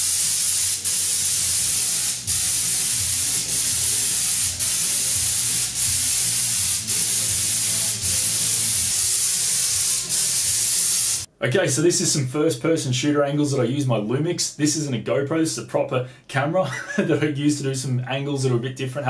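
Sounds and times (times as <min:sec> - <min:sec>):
spray gun hissing: 0:00.0 - 0:11.3.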